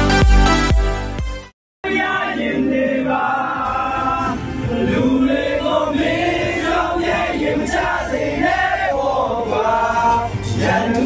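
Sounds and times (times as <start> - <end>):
choir singing long notes: 1.8 - 11.0.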